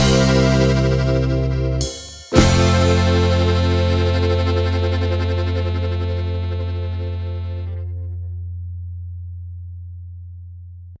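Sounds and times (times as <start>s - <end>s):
low note of closing chord ringing: 2.4s - 8.4s.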